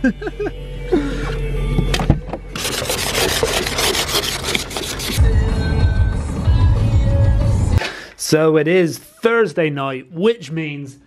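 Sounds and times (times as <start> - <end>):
ice scraper scraping windscreen: 2.6 - 5.2.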